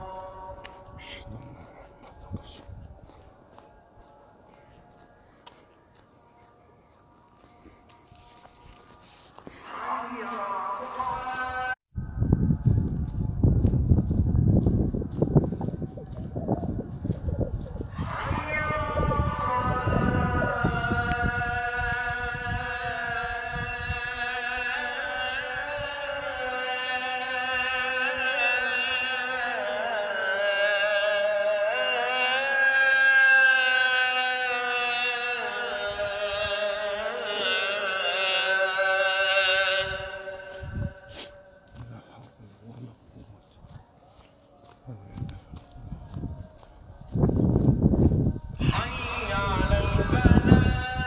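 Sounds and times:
call to prayer over loudspeakers: 0:00.0 - 0:12.0, 0:15.6 - 0:51.0.

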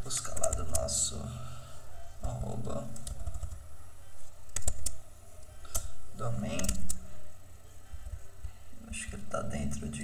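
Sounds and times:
keyboard typing: 0:00.2 - 0:00.9, 0:02.8 - 0:03.6, 0:04.5 - 0:05.0, 0:06.6 - 0:07.0.

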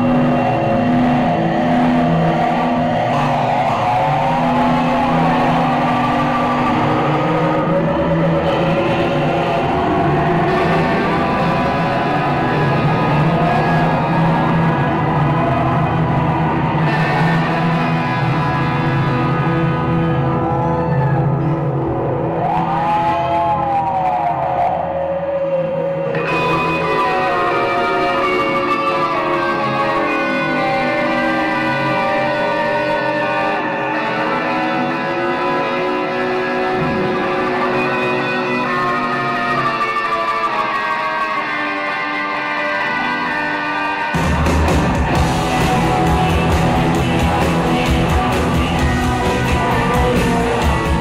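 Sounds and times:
electric guitar and keyboard tones: 0:00.0 - 0:51.0
rock band droning chords: 0:00.0 - 0:51.0
repeating bass figure: 0:44.2 - 0:51.0.

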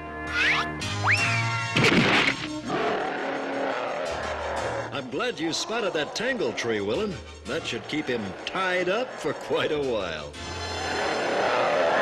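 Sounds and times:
cartoon monster roar: 0:02.6 - 0:07.0, 0:07.6 - 0:09.7.

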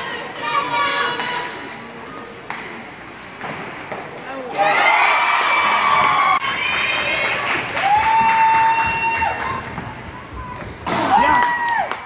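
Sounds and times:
crowd cheering and yelling: 0:04.5 - 0:10.4.

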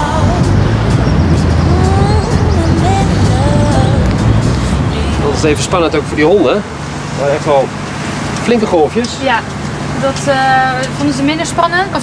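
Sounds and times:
wind noise: 0:00.0 - 0:06.9
boat engine rumbling: 0:00.0 - 0:12.0
water noise: 0:00.0 - 0:12.0.

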